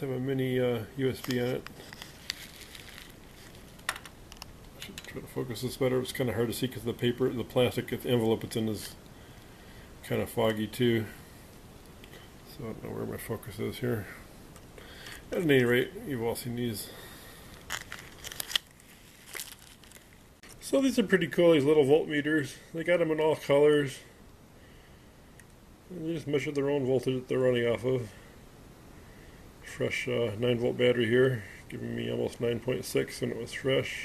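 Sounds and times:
plastic bag crackling: 1.0s - 5.1s, 17.3s - 20.4s.

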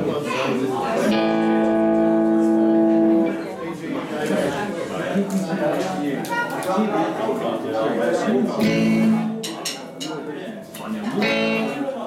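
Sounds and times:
voices: 0.0s - 12.0s
electric guitars strumming chords: 1.0s - 3.6s, 8.6s - 9.6s, 10.7s - 12.0s.

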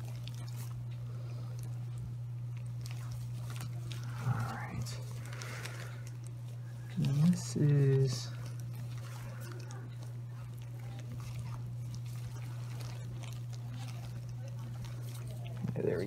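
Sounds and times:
soft handling noises: 0.0s - 16.0s
steady low hum: 0.0s - 16.0s.

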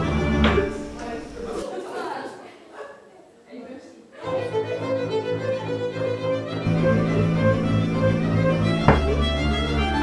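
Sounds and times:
faint voices of children and adults: 1.0s - 6.4s.

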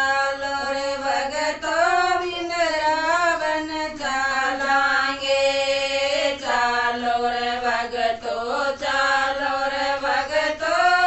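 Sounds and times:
women singing devotional song: 0.0s - 11.0s.

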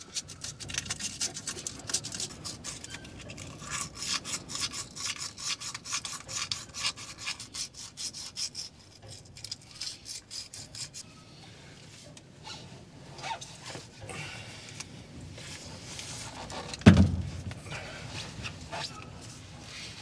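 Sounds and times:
sandpaper scratching metal: 0.0s - 11.0s.

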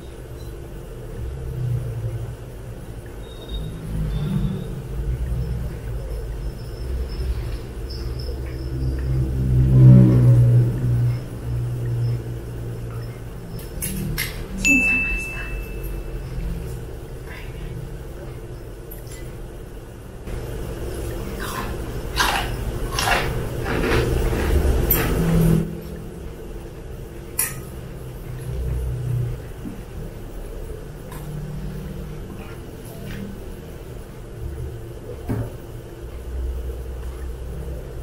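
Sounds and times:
chewing: 21.1s - 24.6s
slurping noodles: 21.2s - 25.6s.

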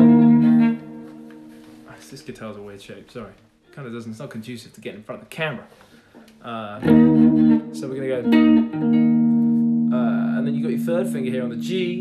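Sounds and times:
electric guitar power chord: 0.0s - 1.6s, 6.8s - 12.0s.

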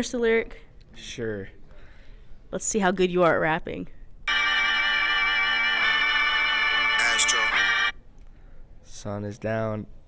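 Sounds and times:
rap song from phone speaker: 4.3s - 7.9s.

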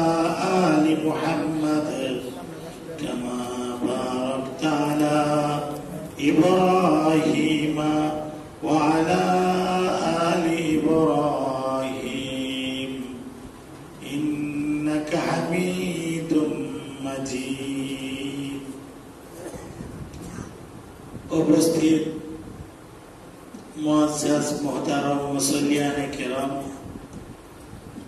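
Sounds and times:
man chanting into a microphone: 0.0s - 13.3s, 14.0s - 18.9s, 21.3s - 22.4s, 23.6s - 26.9s.

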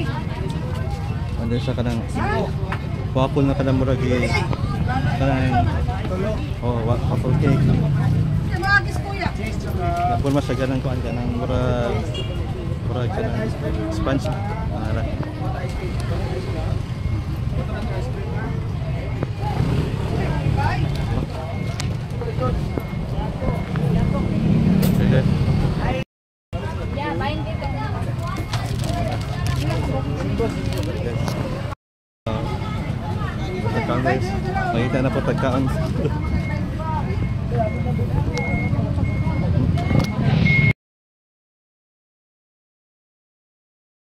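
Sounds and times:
voices: 0.0s - 26.0s, 26.6s - 40.7s
street noise: 0.0s - 40.8s
vehicle reversing alarm beeping: 0.1s - 8.2s, 9.0s - 26.0s, 26.6s - 31.7s, 32.3s - 40.8s.

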